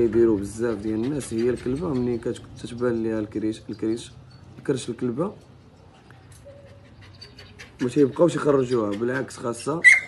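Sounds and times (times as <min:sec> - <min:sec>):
dog whimpering: 0:06.4 - 0:10.0.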